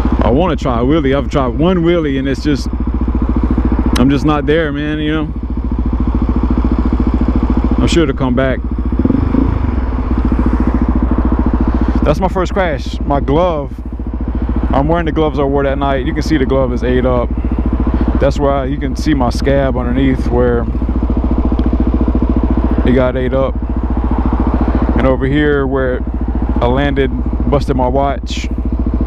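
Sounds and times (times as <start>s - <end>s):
motorcycle engine idling: 0.0s - 29.0s.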